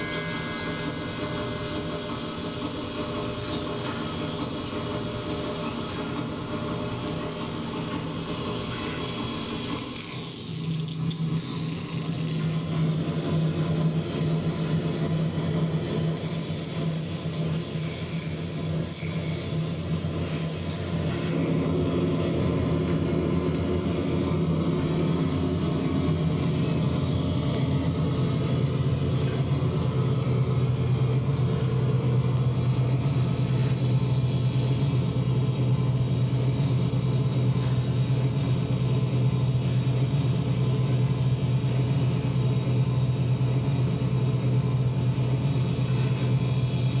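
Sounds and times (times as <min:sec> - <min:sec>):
loud steady low drone: 0:00.0 - 0:47.0.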